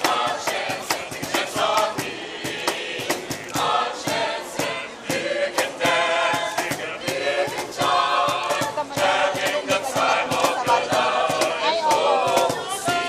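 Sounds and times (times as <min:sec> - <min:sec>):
choir singing: 0:00.0 - 0:13.0
sharp rhythmic beat: 0:00.0 - 0:13.0.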